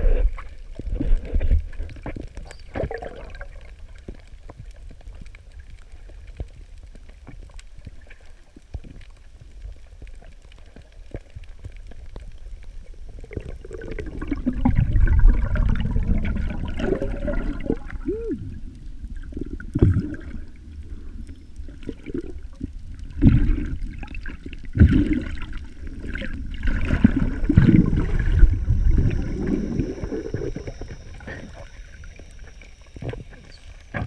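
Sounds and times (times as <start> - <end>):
low underwater rumble: 0.0 - 34.0
water sloshing and gurgling: 0.0 - 34.0.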